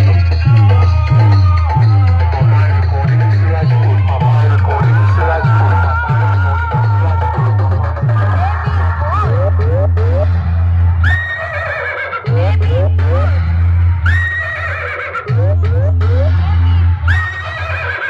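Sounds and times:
loud dj music with heavy bass: 0:00.0 - 0:18.0.

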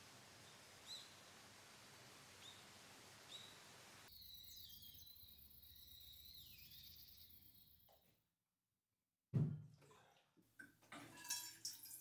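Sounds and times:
rising bird chirps: 0:03.3 - 0:07.8.

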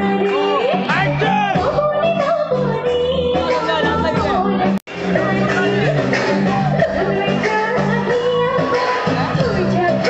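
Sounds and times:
woman singing into a microphone: 0:00.0 - 0:00.9, 0:01.6 - 0:10.0
live band accompaniment: 0:00.0 - 0:10.0.

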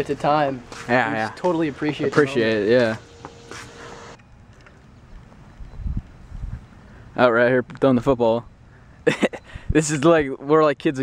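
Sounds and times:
wind rumbling on microphone: 0:05.0 - 0:07.0.

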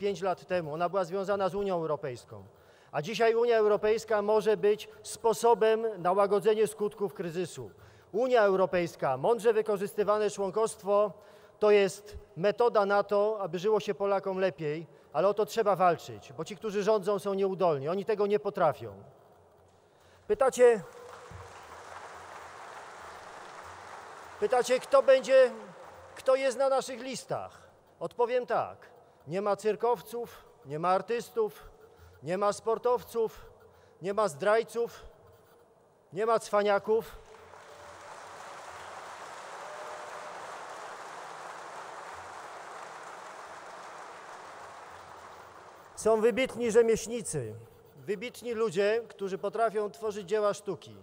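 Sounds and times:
room noise of seated audience: 0:19.3 - 0:27.0, 0:37.1 - 0:46.2.

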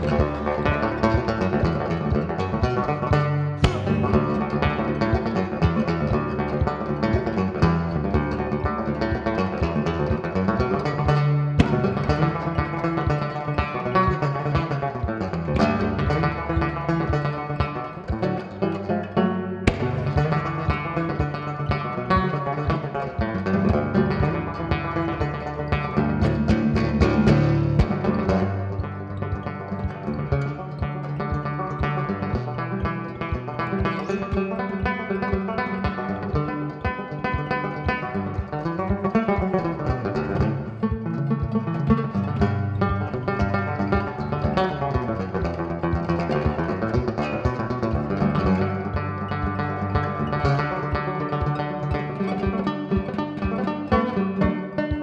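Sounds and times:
banjo picking: 0:00.0 - 0:55.0.

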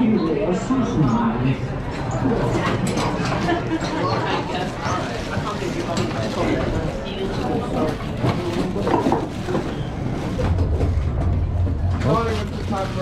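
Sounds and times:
low rumble: 0:09.8 - 0:13.0.

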